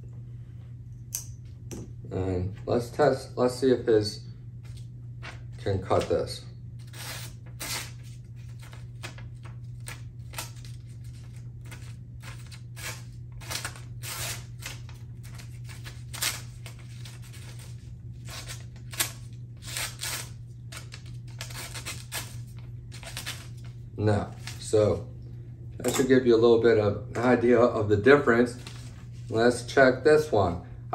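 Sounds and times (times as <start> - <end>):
knife slicing paper: 6.8 - 23.7.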